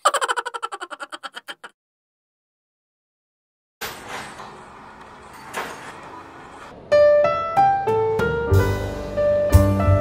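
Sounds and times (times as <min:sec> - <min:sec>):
piano music: 0:06.9 - 0:10.0.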